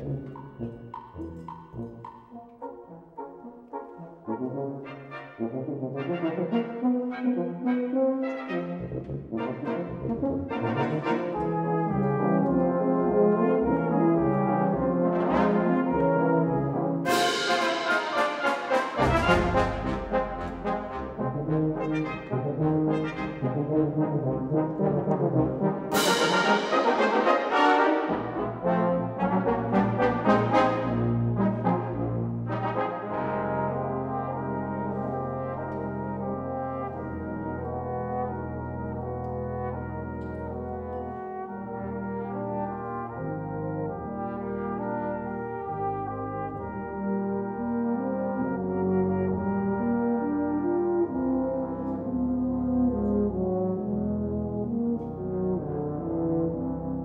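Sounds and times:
brass band playing: 0:00.0 - 0:57.0
bright cymbal crashes: 0:17.1 - 0:20.2.

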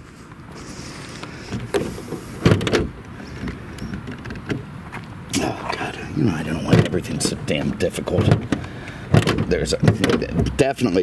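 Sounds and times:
steady low hum: 0:00.0 - 0:11.0
hood latch clicks and clunks: 0:01.7 - 0:04.7, 0:06.7 - 0:10.7.

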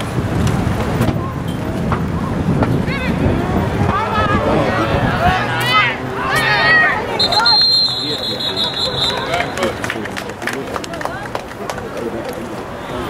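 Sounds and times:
players shouting and chatting: 0:00.0 - 0:13.0
referee's whistle blast: 0:07.2 - 0:09.8.

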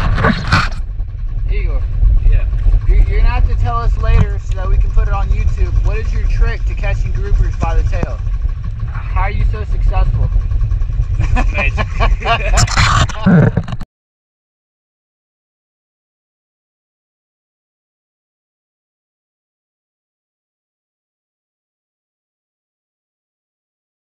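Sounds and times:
steady low rumble: 0:00.0 - 0:13.8
men talking: 0:01.5 - 0:08.2, 0:08.9 - 0:10.4, 0:11.2 - 0:13.4.

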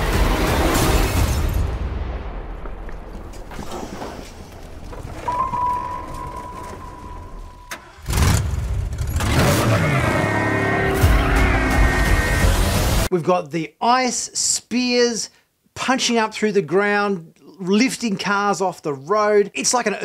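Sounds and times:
high ringing tone: 0:05.2 - 0:08.0
car engine: 0:06.6 - 0:13.1.

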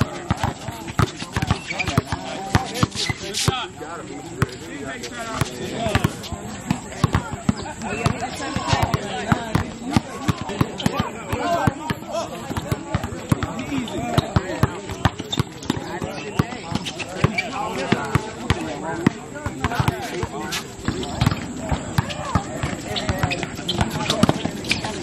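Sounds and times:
basketball bouncing on court: 0:00.0 - 0:03.0, 0:05.4 - 0:25.0
players calling out: 0:00.0 - 0:25.0.

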